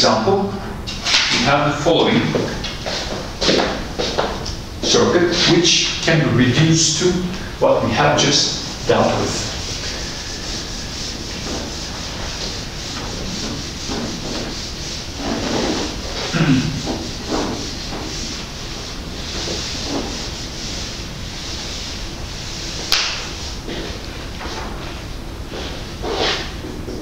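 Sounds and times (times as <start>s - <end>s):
eraser wiping whiteboard: 2.0s - 24.7s, 25.5s - 26.7s.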